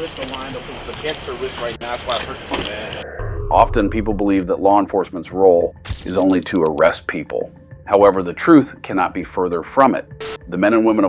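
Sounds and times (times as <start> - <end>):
person talking: 6.0 - 7.0.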